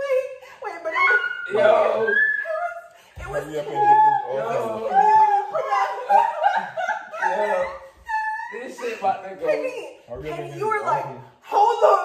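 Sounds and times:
people laughing and talking: 0:00.0 - 0:12.0.

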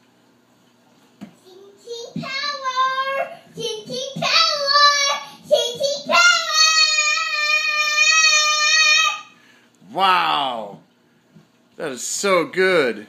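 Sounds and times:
girl singing high notes: 0:01.5 - 0:09.4.

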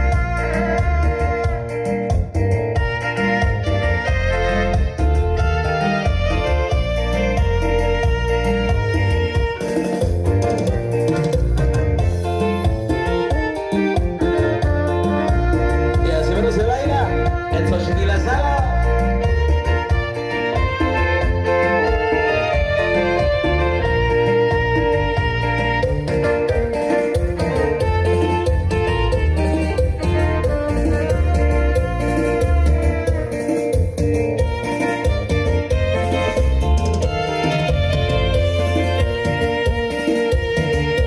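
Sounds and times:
electronic keyboard melody: 0:00.0 - 0:41.0
heavy bass: 0:00.0 - 0:41.0.

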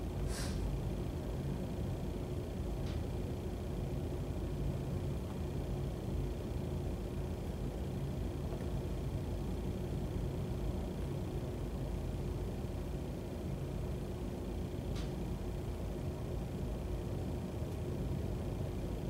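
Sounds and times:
low rumble and hum: 0:00.0 - 0:19.0.

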